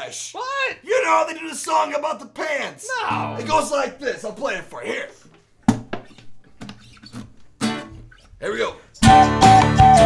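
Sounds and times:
guitar strum: 3.1s - 4.6s
plucked guitar notes: 3.1s - 4.6s.

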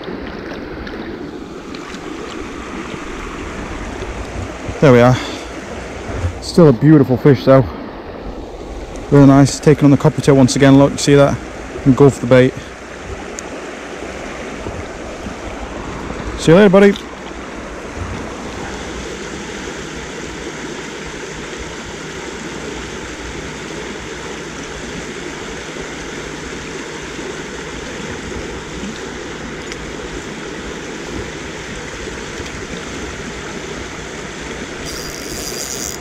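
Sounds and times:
river flowing over riffles: 0.0s - 36.0s.

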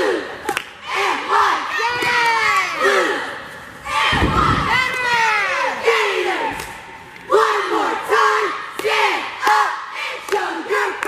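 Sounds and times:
cheer squad shouting in unison: 0.0s - 6.6s, 7.3s - 11.0s.

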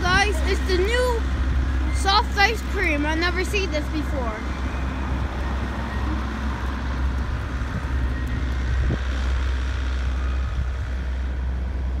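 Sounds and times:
cars driving by: 0.0s - 12.0s
road traffic rumble: 0.0s - 12.0s.

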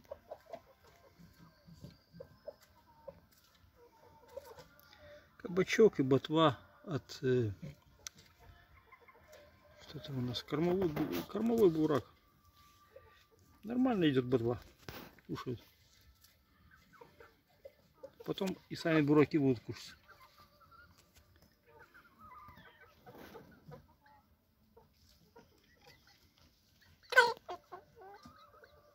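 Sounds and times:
chickens clucking softly: 0.0s - 28.9s
chicken call: 27.0s - 28.4s.

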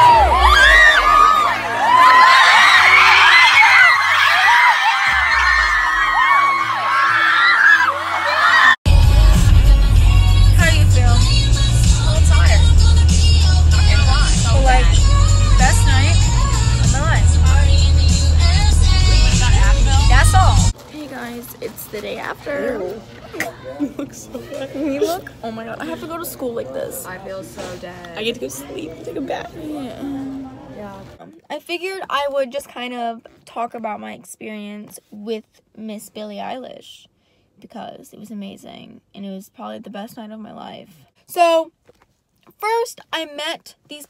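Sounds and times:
crowd singing and screaming: 0.0s - 20.7s
live pop music: 8.9s - 20.7s
music with deep steady bass: 8.9s - 20.7s.

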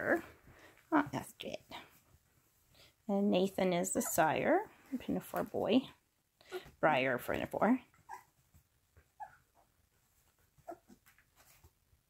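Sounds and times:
puppies squeaking: 8.0s - 8.4s, 10.6s - 11.1s.

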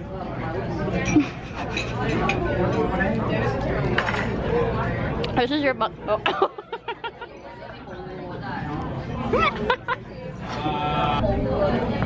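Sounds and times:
restaurant chatter: 0.0s - 12.0s.

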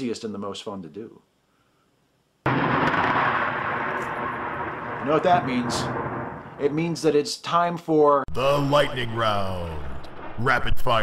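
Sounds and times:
rolling thunder: 2.5s - 7.0s, 8.3s - 11.0s.

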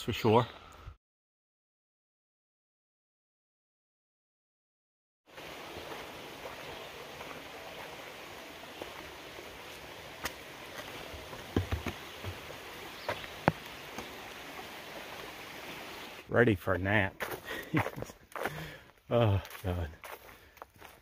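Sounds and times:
creek running: 5.3s - 20.9s
footsteps on wooden planks: 10.2s - 14.2s, 17.2s - 18.8s, 19.4s - 21.0s.

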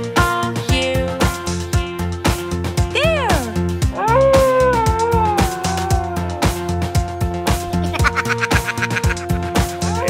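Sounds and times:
upbeat children's music: 0.0s - 10.0s
cartoon werewolf howl: 3.9s - 6.8s.

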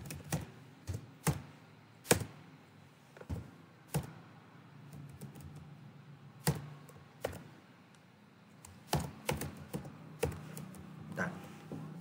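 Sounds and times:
keyboard keystrokes: 8.6s - 10.9s.

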